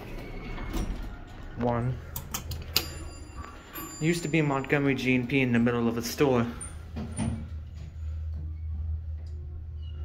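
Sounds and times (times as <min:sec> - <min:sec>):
elevator equipment low hum: 0:02.8 - 0:10.0.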